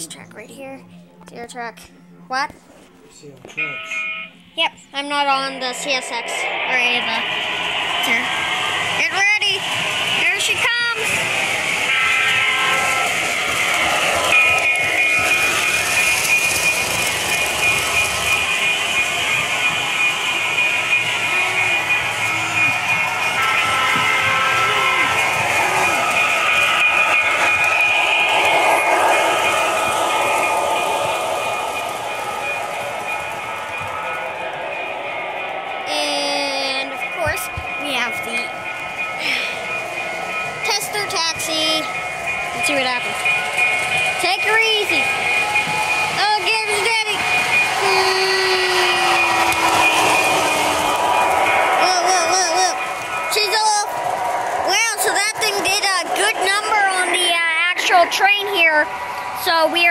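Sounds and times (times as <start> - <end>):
model train on metal track: 3.5 - 59.9.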